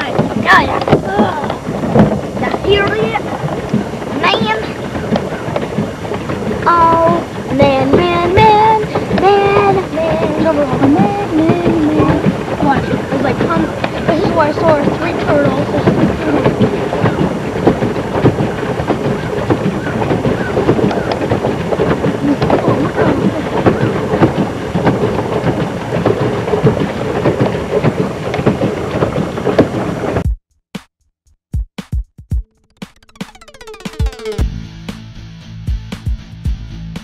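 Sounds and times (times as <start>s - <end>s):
faint voices: 0.0s - 17.8s, 22.1s - 24.5s
paddle wheel churning water: 0.0s - 30.2s, 33.1s - 34.5s.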